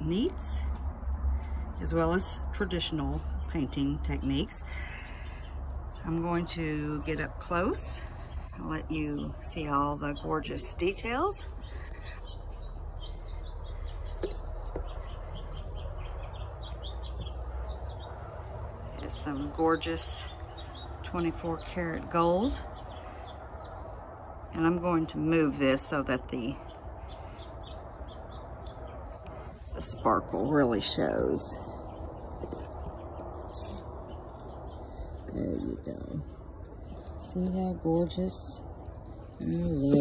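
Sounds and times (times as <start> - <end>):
small birds chirping: 0.0 - 40.0.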